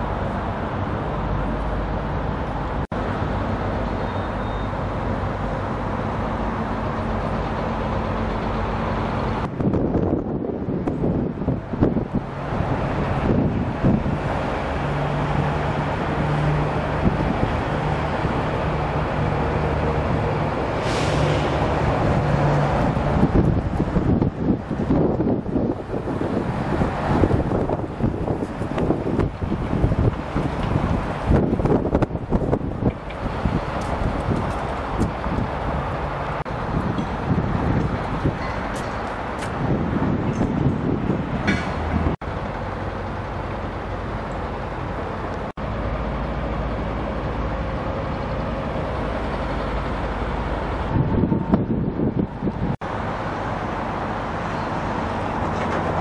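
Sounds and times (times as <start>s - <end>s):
wind buffeting microphone: 6.8s - 42.4s, 46.6s - 53.2s.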